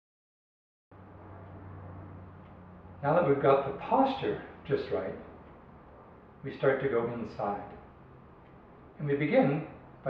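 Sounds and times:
faint low hum: 0:01.0 - 0:10.0.

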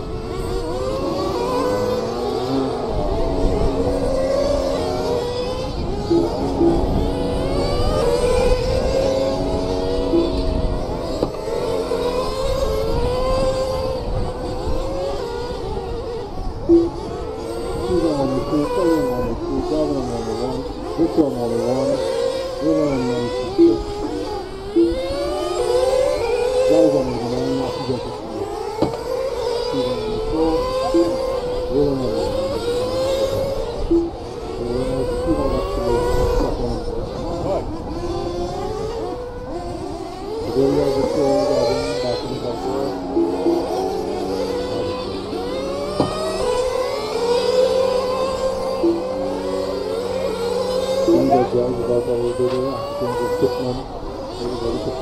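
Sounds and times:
rc car engines revving: 0:00.0 - 0:55.0.

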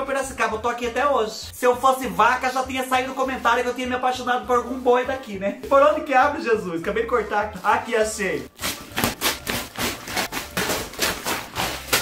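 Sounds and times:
paper wrapping ripping: 0:08.5 - 0:12.0.

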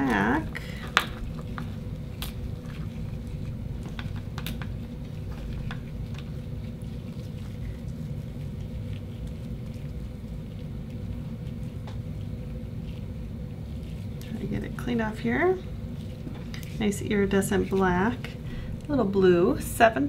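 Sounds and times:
steady low hum: 0:00.0 - 0:20.0
clicks and squishes of oyster: 0:00.6 - 0:14.4.

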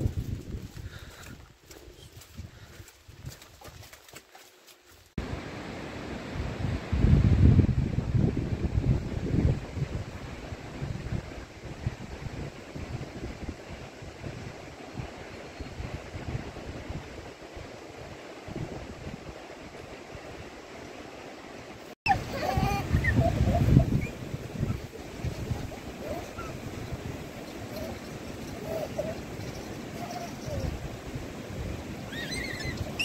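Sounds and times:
wind buffeting microphone: 0:00.0 - 0:03.8, 0:06.3 - 0:20.7, 0:22.1 - 0:33.0.

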